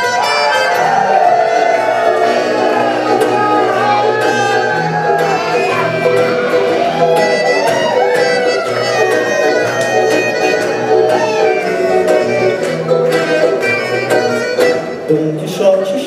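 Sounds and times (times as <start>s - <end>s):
accordion: 0.0s - 15.4s
sliding melody line: 0.0s - 15.6s
acoustic guitars: 0.0s - 16.0s
pulsing bass: 0.8s - 15.1s.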